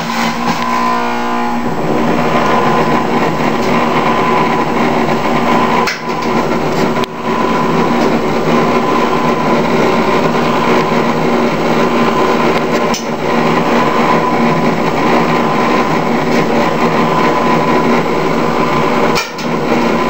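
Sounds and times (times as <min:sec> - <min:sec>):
juicer motor humming: 0:00.0 - 0:20.0.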